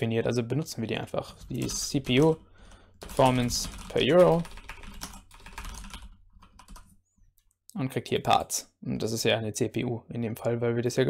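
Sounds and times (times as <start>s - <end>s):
computer keyboard typing: 1.4s - 7.0s.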